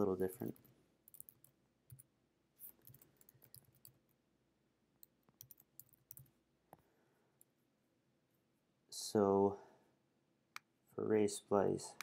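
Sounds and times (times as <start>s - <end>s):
computer keyboard typing: 0.5s - 2.1s, 2.7s - 4.0s, 5.3s - 6.3s.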